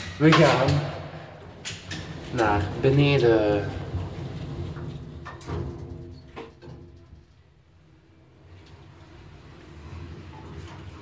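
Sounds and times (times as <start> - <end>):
lift machinery hum: 0.0 - 11.0.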